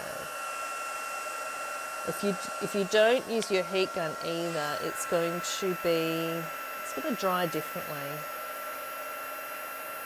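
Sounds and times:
heat gun blowing air: 0.0s - 10.0s.

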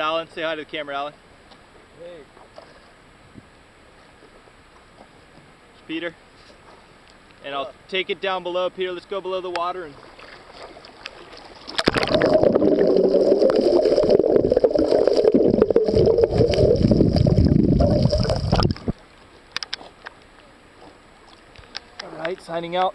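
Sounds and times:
underwater rushing and gurgling: 10.2s - 19.0s.

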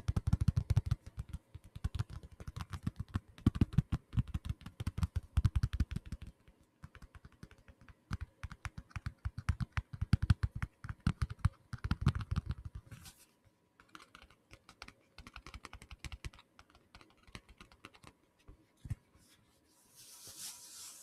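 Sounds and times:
fingertips tapping on a case: 0.0s - 12.8s.

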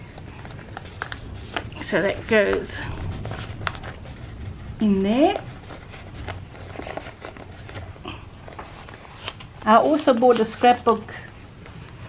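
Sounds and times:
low steady hum: 0.0s - 12.0s
paper and card rustling: 0.0s - 12.0s.

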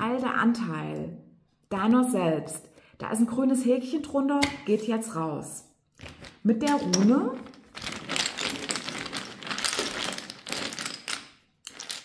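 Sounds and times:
pieces rattling in a bag: 6.0s - 12.0s.

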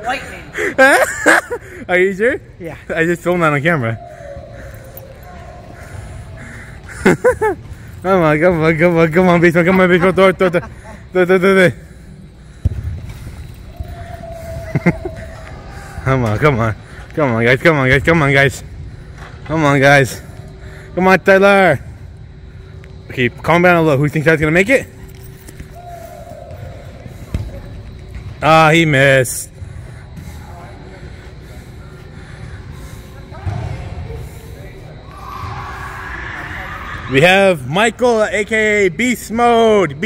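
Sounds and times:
short laughing calls: 4.0s - 8.0s, 9.3s - 12.1s, 14.0s - 16.0s
soccer ball kick thud: 12.6s - 13.1s, 27.3s - 27.6s.

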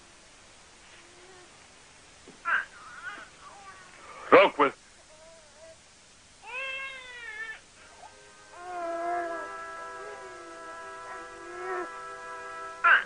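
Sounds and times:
wailing cry: 6.4s - 13.0s
soft film score music: 6.5s - 13.0s.

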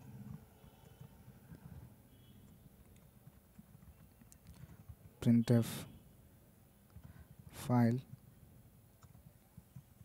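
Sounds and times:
keyboard typing: 0.1s - 5.2s, 9.0s - 10.0s.

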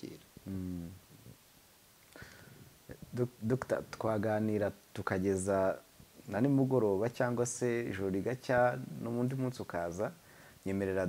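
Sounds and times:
speech: 2.9s - 11.0s.

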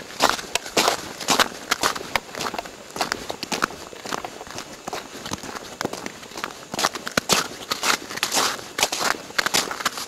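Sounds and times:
footsteps crunching in snow: 0.0s - 10.0s.

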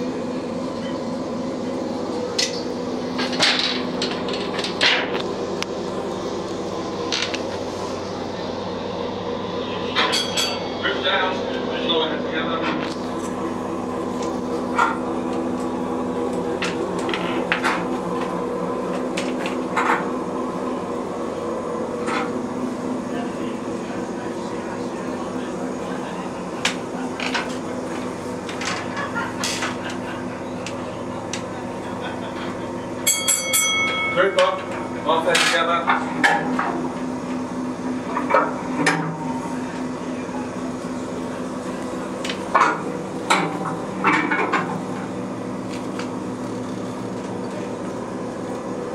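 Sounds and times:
mechanical hum: 0.0s - 48.9s.

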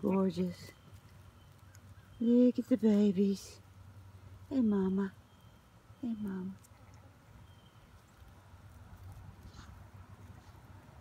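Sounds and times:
faint rustle on straw: 5.2s - 11.0s.

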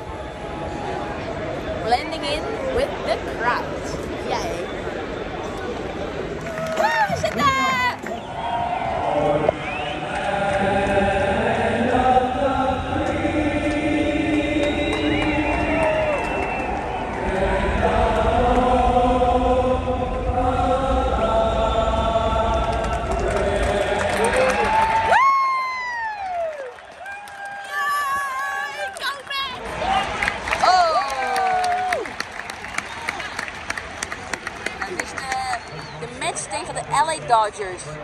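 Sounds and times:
crowd noise: 0.0s - 38.0s
choir singing over loudspeakers: 8.2s - 25.1s.

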